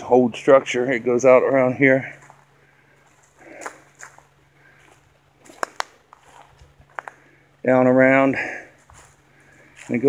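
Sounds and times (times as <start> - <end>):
footsteps in dry leaves: 2.0 - 7.4, 8.6 - 10.0.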